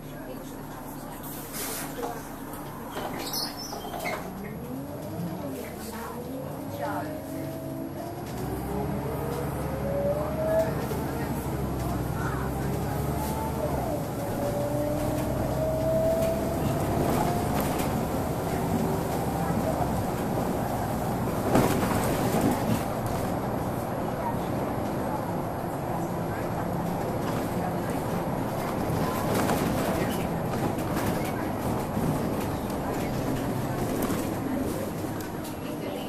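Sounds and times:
bus engine and road rumble: 0:00.0 - 0:36.0.

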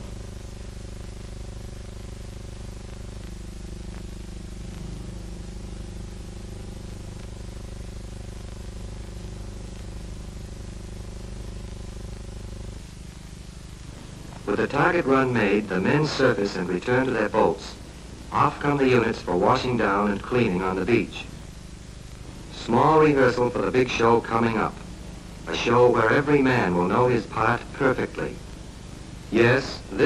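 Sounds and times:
low hum with hiss: 0:00.0 - 0:30.0.

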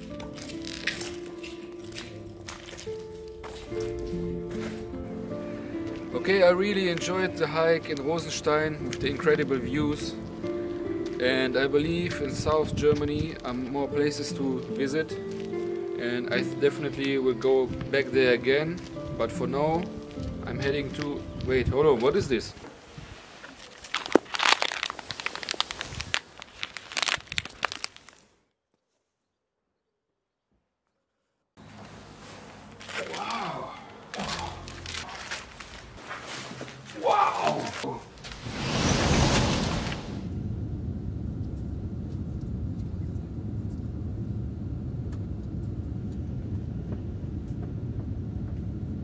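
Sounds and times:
plastic sachets crinkling: 0:23.4 - 0:28.4, 0:32.7 - 0:36.0
aircraft cabin engine rumble: 0:39.9 - 0:49.0.

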